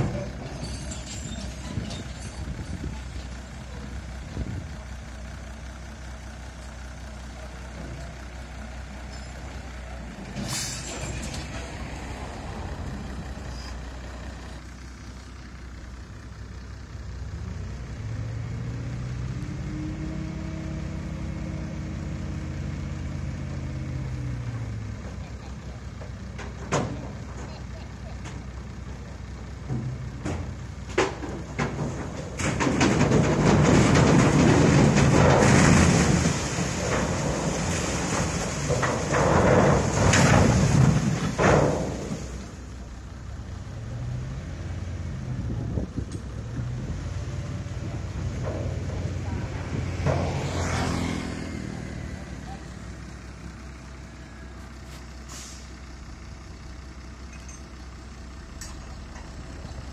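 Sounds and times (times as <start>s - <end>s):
heavy diesel engine running: 0.0s - 59.9s
sugarcane tumbling into rail cars: 9.1s - 12.1s, 29.6s - 42.6s.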